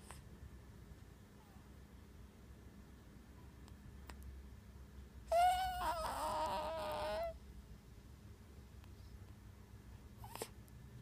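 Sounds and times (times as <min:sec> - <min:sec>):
newborn baby crying: 0:05.3 - 0:07.4.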